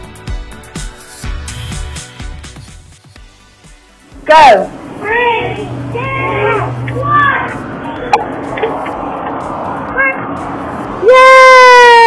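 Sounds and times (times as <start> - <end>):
outdoor background noise: 3.8 - 12.0
children calling out: 5.0 - 8.2.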